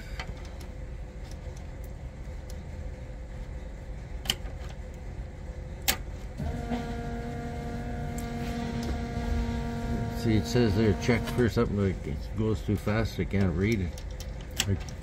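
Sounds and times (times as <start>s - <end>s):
steady electric hum: 0.0s - 15.0s.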